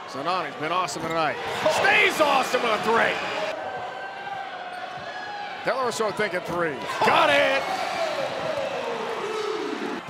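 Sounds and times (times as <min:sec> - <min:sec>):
arena crowd din: 0:00.0 - 0:10.0.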